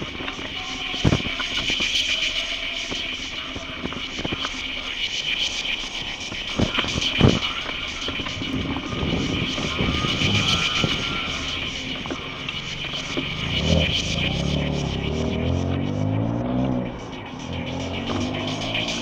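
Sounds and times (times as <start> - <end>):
car engine: 0.0 - 19.0
mobility scooter electric whine: 5.7 - 19.0.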